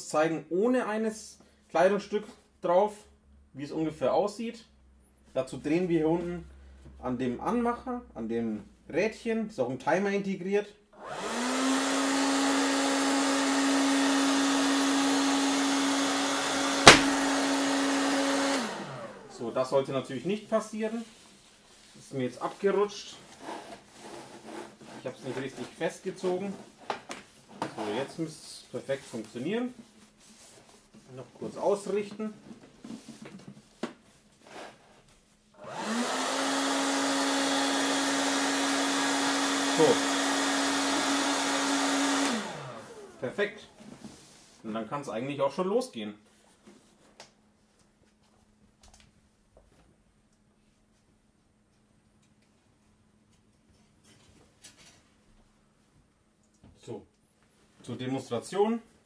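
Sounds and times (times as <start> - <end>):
hot-air blower humming: 11.0 - 19.9, 35.6 - 44.6
sharp knock: 16.8 - 17.3.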